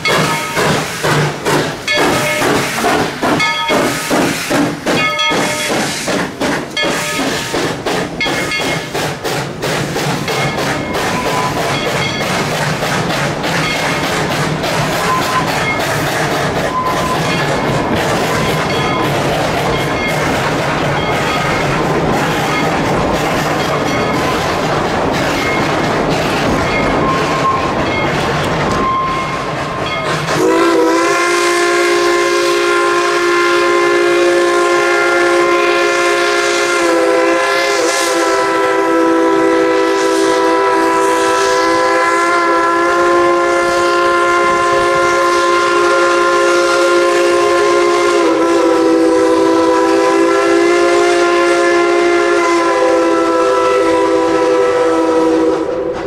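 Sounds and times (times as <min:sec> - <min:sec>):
train cars rolling past: 0:00.0 - 0:56.0
steam whistle long blast: 0:06.9 - 0:07.7, 0:30.1 - 0:56.0.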